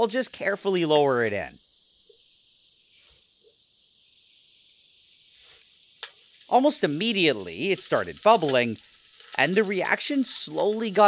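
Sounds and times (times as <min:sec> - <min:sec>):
acid fizzing and bubbling: 0:00.0 - 0:11.0.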